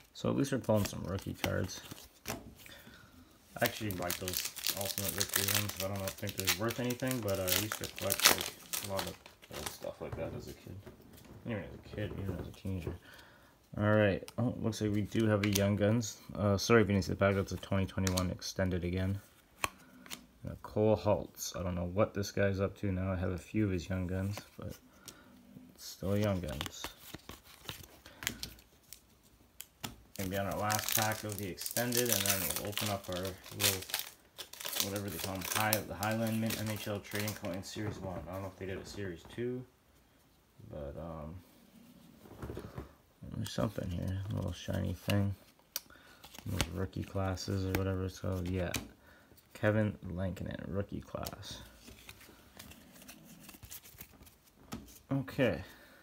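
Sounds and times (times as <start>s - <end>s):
trading cards and packaging rustling: 0.0s - 16.1s, 25.8s - 39.6s, 41.8s - 49.6s, 50.3s - 55.7s.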